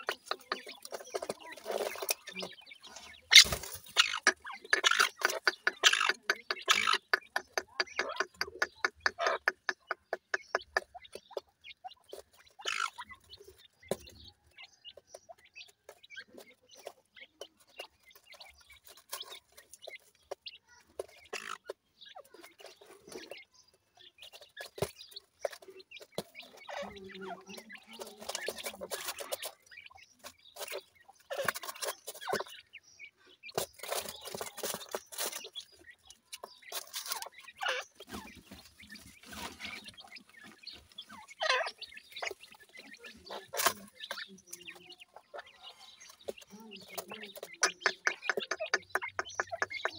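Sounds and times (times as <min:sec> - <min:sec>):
scratching in loose soil: 0:00.0 - 0:14.8, 0:15.6 - 0:49.9
bird clucks bending downward: 0:00.0 - 0:49.9
chicks pecking taps: 0:00.0 - 0:49.9
soft high chick chirps: 0:00.0 - 0:49.9.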